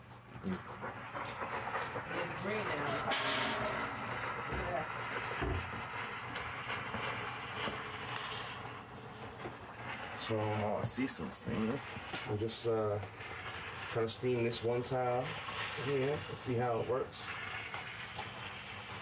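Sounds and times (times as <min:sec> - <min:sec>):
steam mop hissing: 0:00.4 - 0:19.0.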